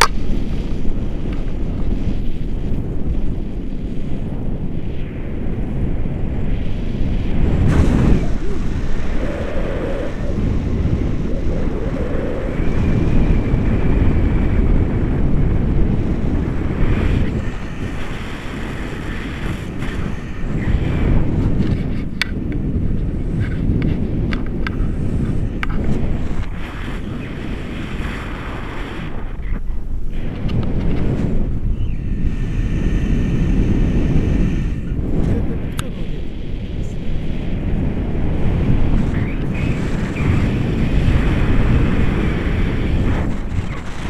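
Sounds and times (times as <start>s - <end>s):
wind buffeting microphone: 0.0s - 44.0s.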